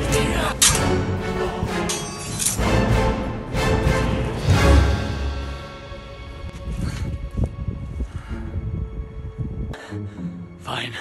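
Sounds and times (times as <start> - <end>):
orchestral music: 0.0 - 11.0.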